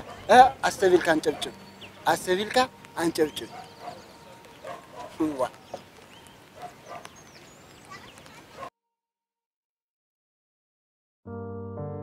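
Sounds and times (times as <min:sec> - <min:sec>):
faint outdoor background: 0:00.0 - 0:09.1
high chirps: 0:00.1 - 0:08.4.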